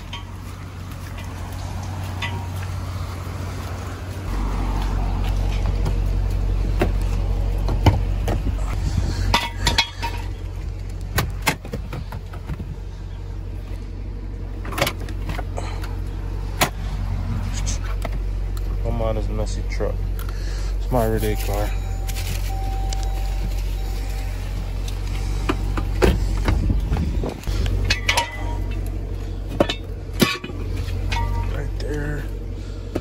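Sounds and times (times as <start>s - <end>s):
low rumble: 0.0s - 33.0s.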